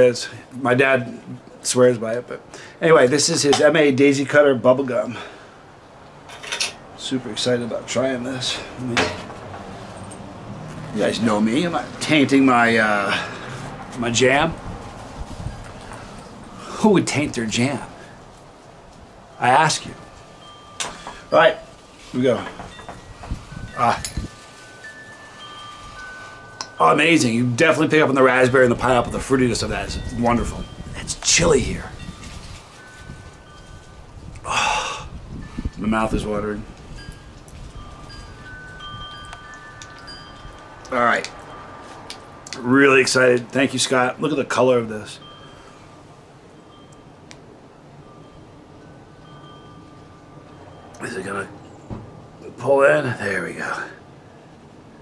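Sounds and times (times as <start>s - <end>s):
wind chimes ringing: 2.9s - 55.0s
faint chime-like ringing tones: 19.3s - 27.5s, 44.5s - 51.9s
low thump: 51.9s - 52.2s.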